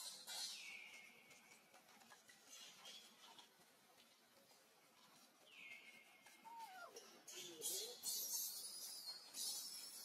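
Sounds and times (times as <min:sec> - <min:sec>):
infant monkey calls: 0:06.3 - 0:10.0.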